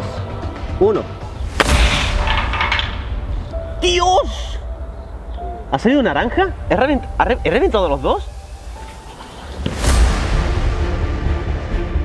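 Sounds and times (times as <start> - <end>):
background music: 0.0 - 12.0
rifle shot: 1.5 - 3.1.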